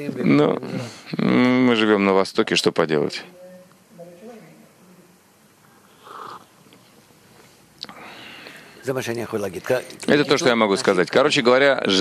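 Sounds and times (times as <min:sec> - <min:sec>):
man speaking: 0:00.0 - 0:03.4, 0:08.8 - 0:12.0
breathy noise: 0:05.6 - 0:08.9
man slurping from a mug: 0:05.8 - 0:06.8.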